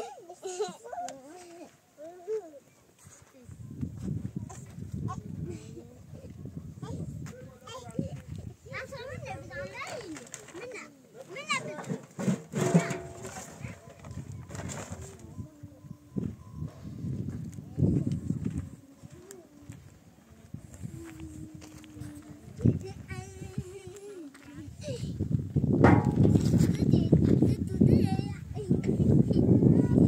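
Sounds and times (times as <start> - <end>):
children chattering and squealing: 0.0 - 25.3, 26.1 - 30.0
sharp knocks: 25.8 - 26.4.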